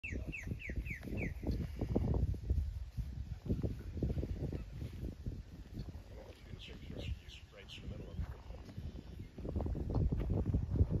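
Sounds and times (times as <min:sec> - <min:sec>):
bird whistled call: 0:00.0 - 0:01.5.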